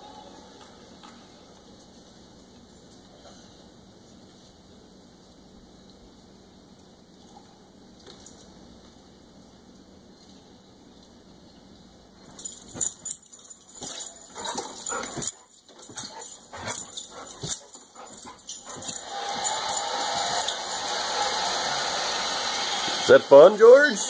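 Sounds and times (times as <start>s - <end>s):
dog claws clicking and knocking: 12.2s - 21.8s
crowd applause on television: 20.2s - 23.5s.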